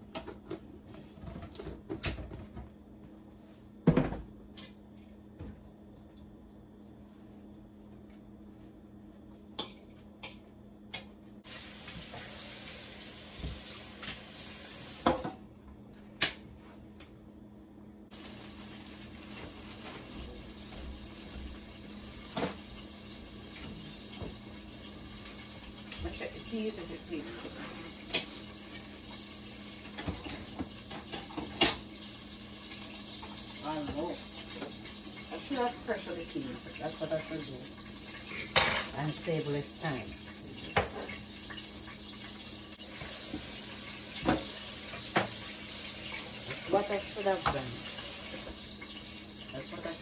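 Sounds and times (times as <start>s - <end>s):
tap running water: 11.4s - 15.4s, 18.1s - 50.0s
knocks and clatters of dishes: 29.9s - 31.8s, 44.2s - 45.4s.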